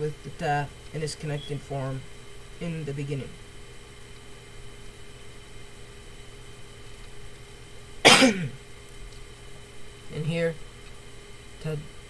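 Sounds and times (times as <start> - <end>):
faint steady hum: 0.0 - 12.0
person coughing: 8.0 - 8.6.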